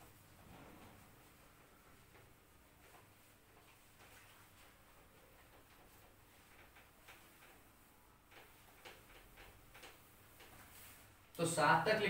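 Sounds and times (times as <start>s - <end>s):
cloth wiping a whiteboard: 0.0s - 11.3s.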